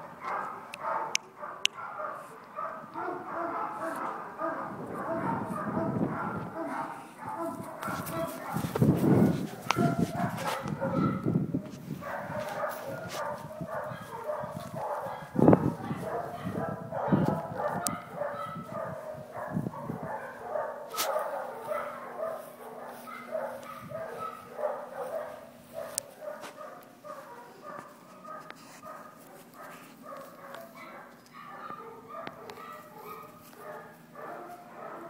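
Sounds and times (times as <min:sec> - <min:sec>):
dogs barking: 0:00.0 - 0:35.0.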